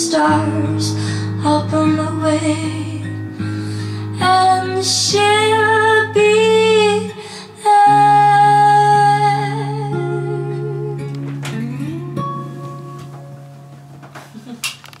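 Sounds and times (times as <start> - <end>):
strummed acoustic guitar: 0.0 - 14.3.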